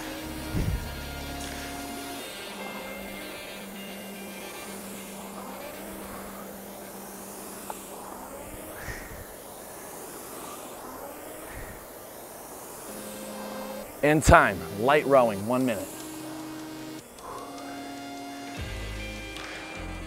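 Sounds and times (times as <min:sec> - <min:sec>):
background music with low note: 0:00.0 - 0:07.1, 0:12.9 - 0:20.0
rowing machine flywheel whirring: 0:00.0 - 0:20.0.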